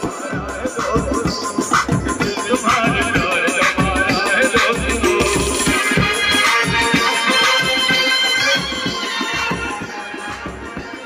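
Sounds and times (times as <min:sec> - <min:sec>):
brass band music with heavy beat: 0:00.0 - 0:11.0.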